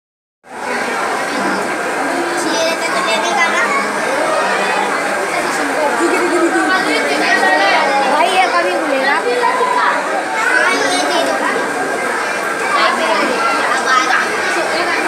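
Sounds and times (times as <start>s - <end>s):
crowd chatter: 0.5s - 15.0s.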